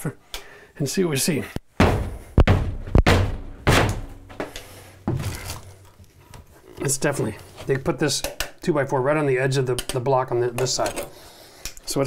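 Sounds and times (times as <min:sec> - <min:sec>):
foot kicking drywall thuds: 0:01.7 - 0:05.3.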